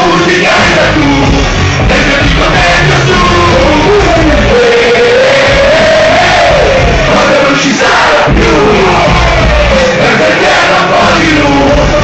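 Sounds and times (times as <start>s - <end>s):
bass-heavy hip hop beat: 0.0s - 12.0s
person singing: 0.0s - 12.0s
crowd shouting along: 1.8s - 12.0s.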